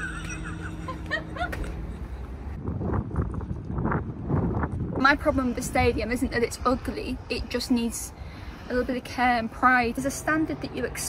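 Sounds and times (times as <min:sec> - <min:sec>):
woman laughing: 0:00.0 - 0:02.3
wind rumbling on microphone: 0:01.1 - 0:11.0.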